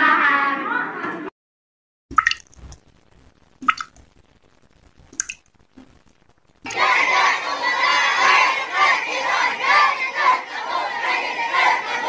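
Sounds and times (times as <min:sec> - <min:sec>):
water drips: 0:02.1 - 0:04.2, 0:05.0 - 0:06.8
children shouting and cheering: 0:06.7 - 0:12.0.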